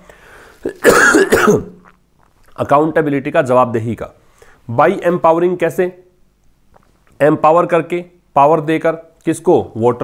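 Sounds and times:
man coughing: 0:00.6 - 0:01.8.

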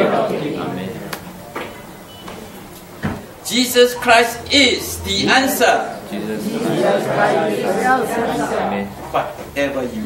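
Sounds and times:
voice echoing in large room: 0:03.3 - 0:10.0.

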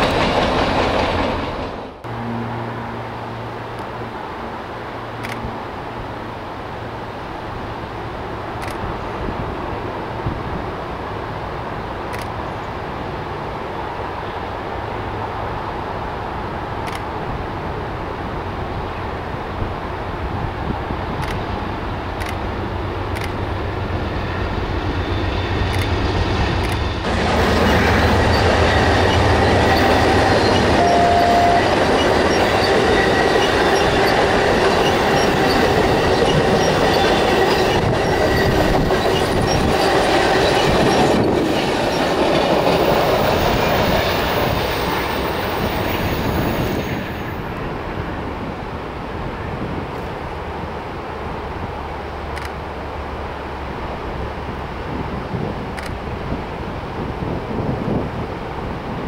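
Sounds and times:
train wheels on rails: 0:00.0 - 0:02.3, 0:07.4 - 0:59.0
diesel locomotive engine drone: 0:00.0 - 0:59.0
wheel squeal: 0:26.8 - 0:42.2.

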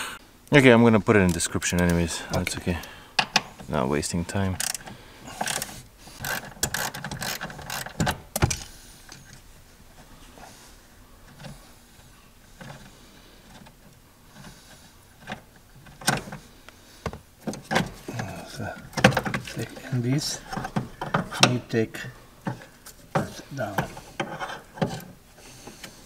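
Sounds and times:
quiet fumbling: 0:01.0 - 0:26.0.

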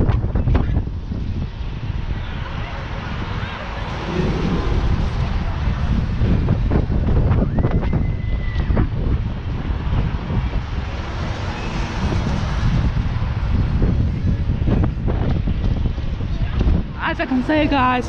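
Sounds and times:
wind buffeting microphone: 0:00.0 - 0:18.0
steady high tone: 0:03.9 - 0:06.0.

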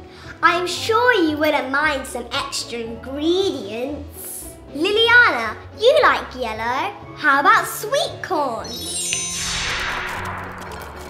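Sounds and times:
soft background music: 0:00.0 - 0:11.0
bright chime: 0:08.6 - 0:10.7
whoosh: 0:08.7 - 0:11.0.

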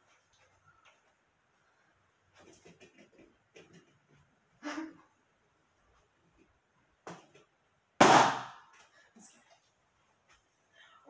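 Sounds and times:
balloon bursting: 0:08.0 - 0:08.6.

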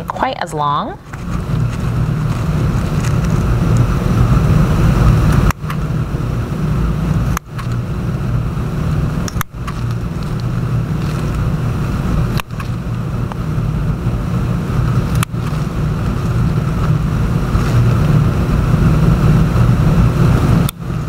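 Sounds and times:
low motor hum with rushing: 0:00.0 - 0:21.0.

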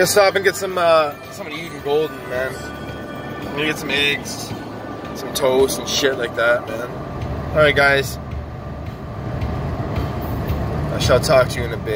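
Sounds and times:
car cabin road noise: 0:00.0 - 0:11.9.

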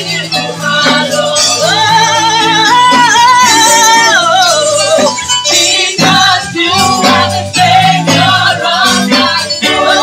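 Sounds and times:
instrumental backing: 0:00.0 - 0:10.0.

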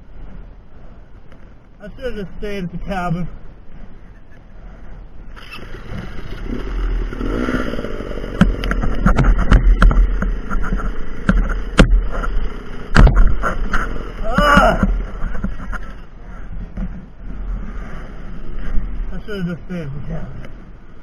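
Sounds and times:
dirt bike engine revving: 0:05.4 - 0:15.3
sharp knocks of bike tipping: 0:08.3 - 0:15.8.

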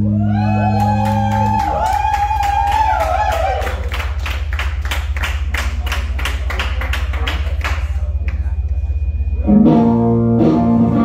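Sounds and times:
low amplifier hum: 0:00.0 - 0:11.0.

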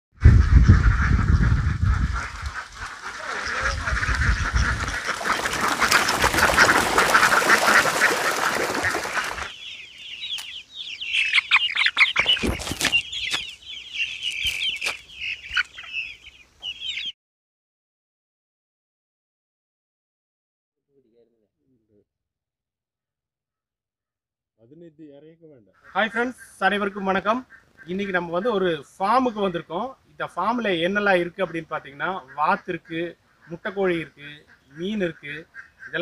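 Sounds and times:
flock of ducks quacking: 0:00.2 - 0:17.1, 0:25.8 - 0:36.0
young chickens cheeping: 0:00.2 - 0:17.2, 0:25.8 - 0:36.0.

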